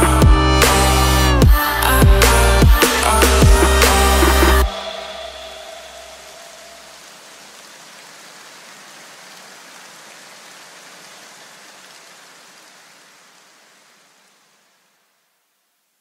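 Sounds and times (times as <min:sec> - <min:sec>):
low electronic music notes: 0:00.0 - 0:05.3
steady hiss of noise: 0:04.2 - 0:16.0.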